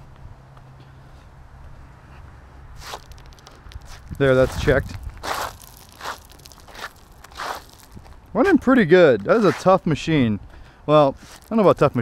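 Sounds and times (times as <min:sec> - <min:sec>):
sandal scuffing on concrete: 0:02.1 - 0:08.2, 0:09.0 - 0:09.8, 0:11.2 - 0:12.0.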